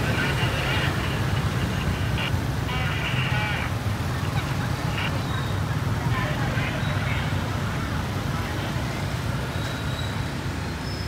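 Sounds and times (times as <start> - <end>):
voices of onlookers: 0.0 - 9.6
engine and traffic rumble: 0.0 - 11.0.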